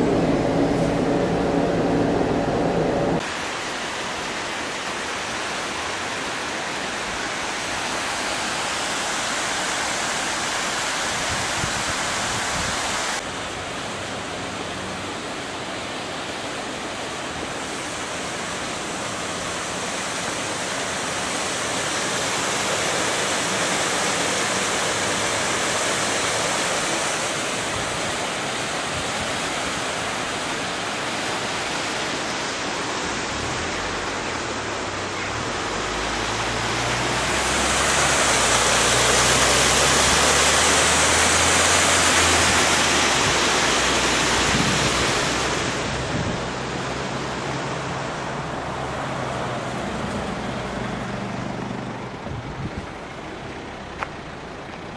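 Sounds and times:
water rushing over a weir: 0:00.0 - 0:54.9.

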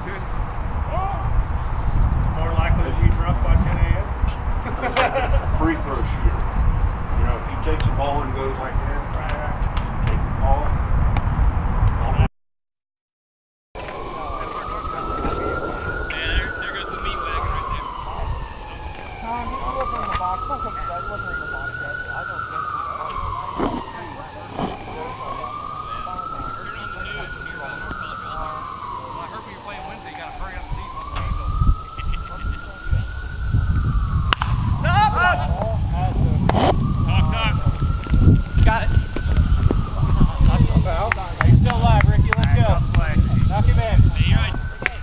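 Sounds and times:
distant siren wailing: 0:00.0 - 0:09.6, 0:13.8 - 0:45.0
bat hitting ball: 0:34.3 - 0:34.6.

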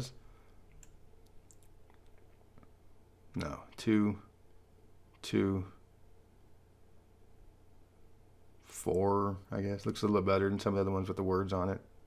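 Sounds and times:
computer mouse clicks: 0:00.7 - 0:02.7.

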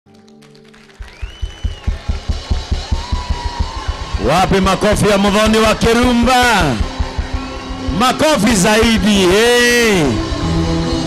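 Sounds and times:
drum kit fast beat: 0:01.0 - 0:09.4.

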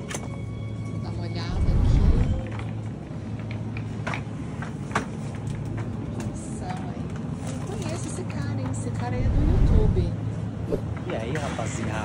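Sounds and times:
steady low hum: 0:01.1 - 0:03.2, 0:09.0 - 0:10.9.

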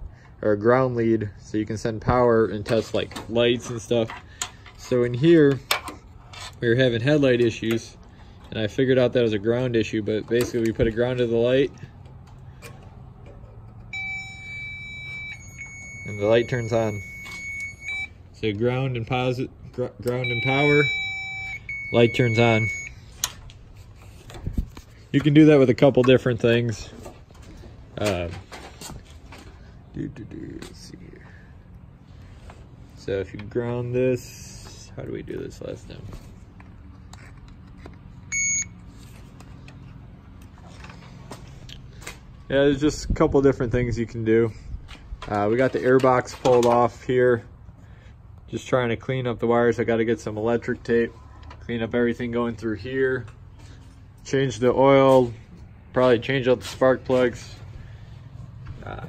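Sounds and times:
circuit tester beeping: 0:13.9 - 0:18.2, 0:20.0 - 0:23.0, 0:38.3 - 0:38.8.

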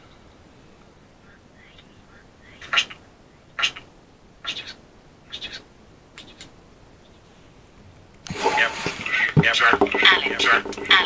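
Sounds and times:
choppy scanned radio bursts: 0:01.1 - 0:06.6, 0:08.3 - 0:11.0.

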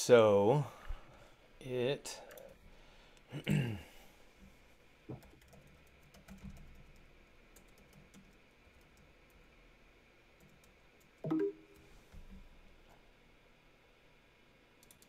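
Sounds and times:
computer keyboard keystrokes: 0:05.1 - 0:09.1, 0:14.8 - 0:15.0.

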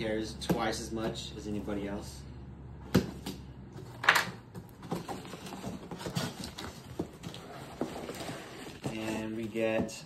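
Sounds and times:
cardboard flaps scraping and rustling: 0:04.6 - 0:09.9.

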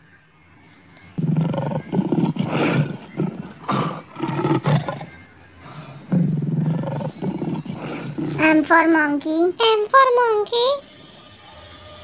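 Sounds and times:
lion roaring: 0:01.2 - 0:08.4.

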